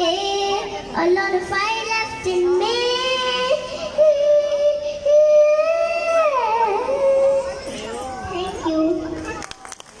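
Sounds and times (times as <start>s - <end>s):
girl singing: 0.0s - 7.6s, 8.2s - 9.1s
children talking and calling out: 0.0s - 10.0s.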